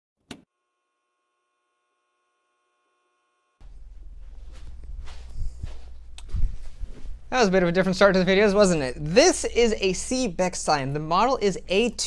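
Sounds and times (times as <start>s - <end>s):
faint electrical hum: 2.7s - 12.0s.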